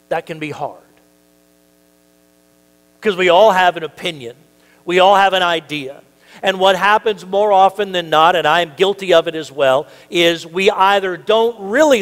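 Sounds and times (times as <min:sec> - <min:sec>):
faint electrical mains hum: 0:00.0 - 0:12.0.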